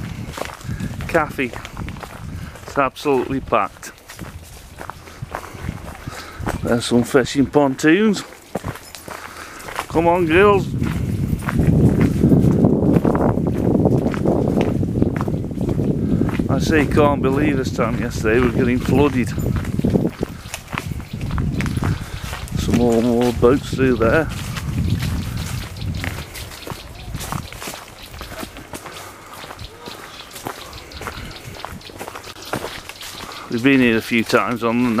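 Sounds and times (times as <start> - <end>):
wind rumble: 0.0 - 7.6, 8.4 - 35.0
footsteps on outdoor path: 0.0 - 35.0
microphone handling: 9.9 - 28.7.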